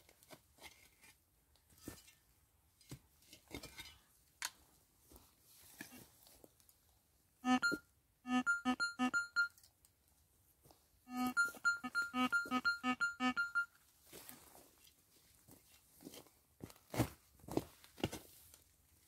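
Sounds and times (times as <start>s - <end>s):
metal detector beeps: 7.4s - 9.6s, 11.1s - 13.7s.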